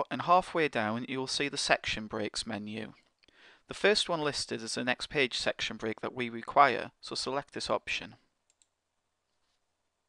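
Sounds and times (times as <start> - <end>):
computer mouse click: 8.5 - 8.8.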